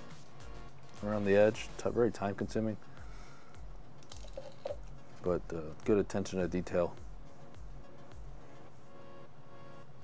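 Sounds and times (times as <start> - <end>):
soft music with low beat: 0.0 - 10.0.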